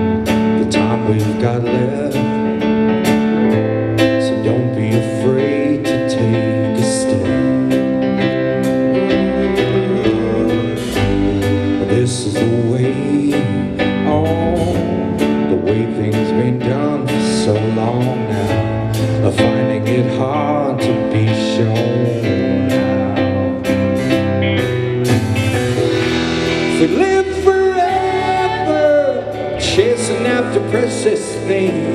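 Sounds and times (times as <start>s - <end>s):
electric guitars: 0.0s - 31.9s
keyboard: 0.0s - 31.9s
person singing: 0.0s - 31.9s
steady drum beat: 8.6s - 31.9s.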